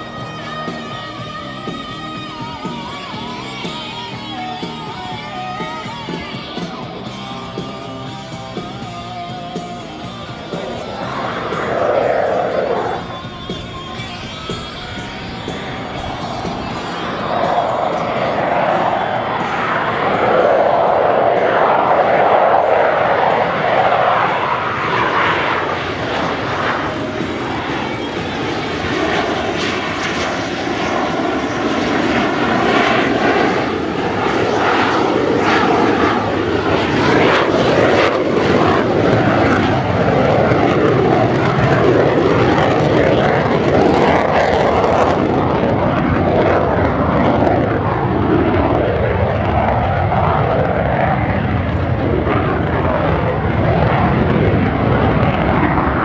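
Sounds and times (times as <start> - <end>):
jet engine roaring: 0.0 - 56.0.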